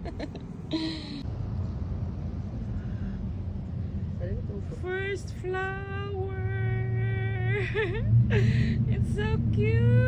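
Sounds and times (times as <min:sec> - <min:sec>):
low rumbling outdoor noise: 0:00.0 - 0:10.0.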